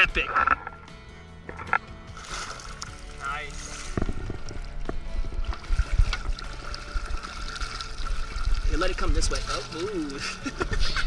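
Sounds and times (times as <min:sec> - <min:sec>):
fish thrashing and water splashing: 0:01.5 - 0:11.0.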